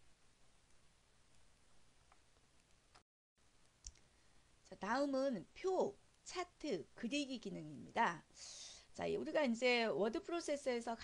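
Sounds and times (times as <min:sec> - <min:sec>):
person speaking: 0:04.7 - 0:08.3.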